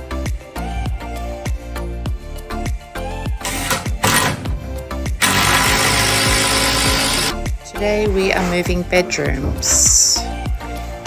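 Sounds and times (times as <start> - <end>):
background music with steady beat: 0.0 - 11.0
cordless drill driving screws: 5.2 - 7.4.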